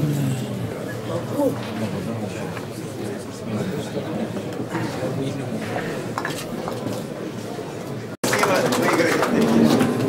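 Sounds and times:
crowd murmur: 0.0 - 10.0.

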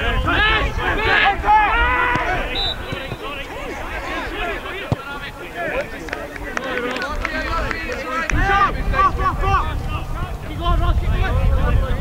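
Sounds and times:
players shouting: 0.0 - 11.4.

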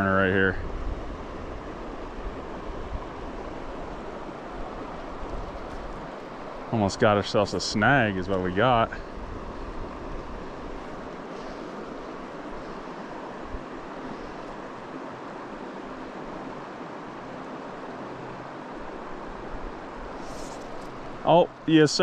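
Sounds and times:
river running over rocks: 0.0 - 22.0.

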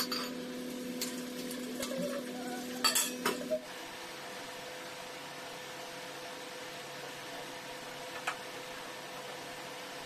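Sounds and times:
steel utensils clinking: 2.8 - 3.5.

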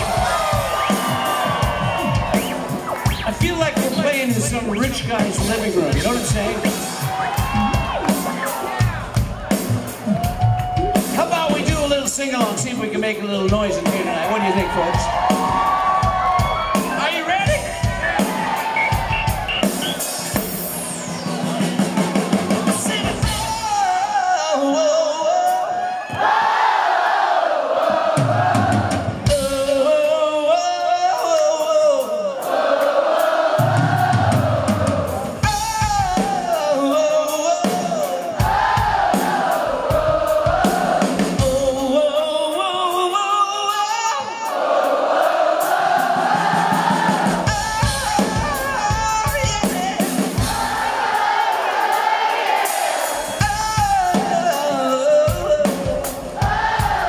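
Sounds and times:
crowd cheering and whooping: 0.0 - 4.2, 6.6 - 11.2, 13.8 - 23.5, 25.6 - 29.3
drum beat: 0.0 - 24.1, 32.8 - 42.0, 44.6 - 57.0
live rock band playing: 0.0 - 25.7, 28.4 - 30.4, 31.0 - 57.0
man singing: 22.5 - 25.9, 29.3 - 32.5, 35.4 - 38.4, 41.2 - 44.6, 47.4 - 50.2, 53.4 - 56.3
audience singing along: 26.0 - 29.4, 32.3 - 35.4, 38.2 - 41.5, 44.2 - 48.0, 50.3 - 53.4, 56.2 - 57.0.

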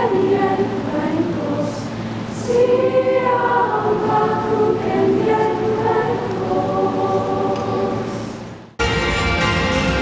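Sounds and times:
choir singing sustained chords: 0.0 - 10.0.

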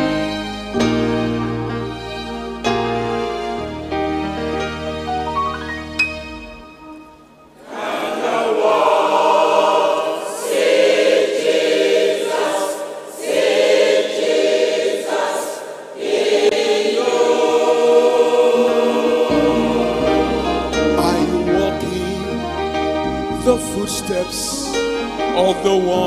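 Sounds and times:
choir singing a gospel hymn: 7.5 - 26.0
low bass notes: 19.3 - 26.0.

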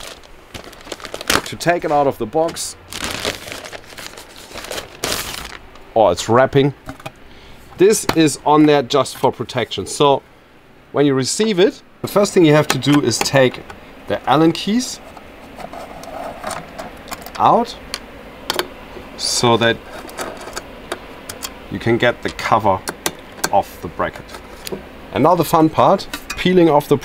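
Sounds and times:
plastic bag crinkling: 0.0 - 5.9.

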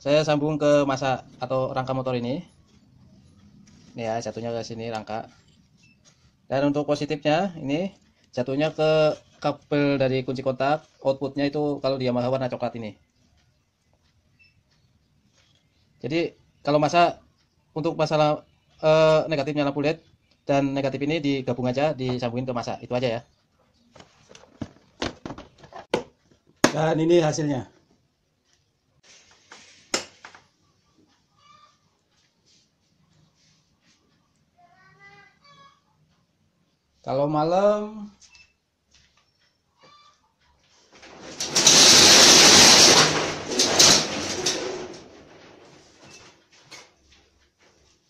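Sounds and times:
sliding door scraping shut: 40.9 - 46.3.

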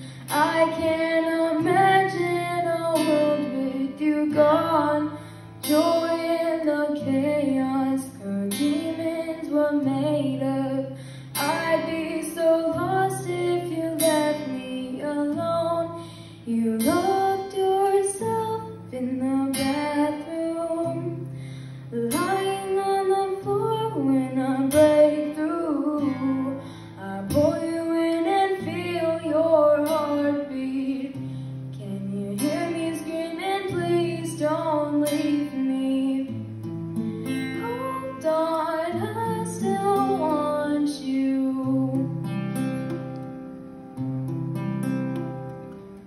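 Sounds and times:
woman singing: 0.0 - 36.5, 37.2 - 42.3
strummed acoustic guitar: 0.0 - 46.0.

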